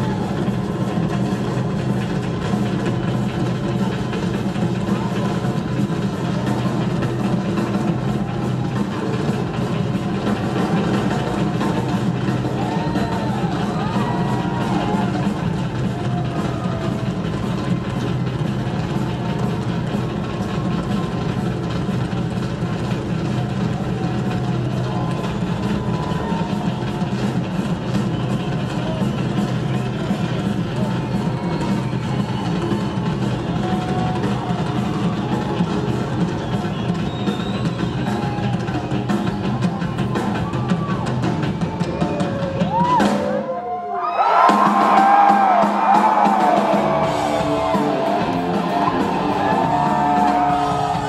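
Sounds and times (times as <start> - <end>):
fast drum solo with cymbals: 0.0 - 43.4, 44.4 - 51.0.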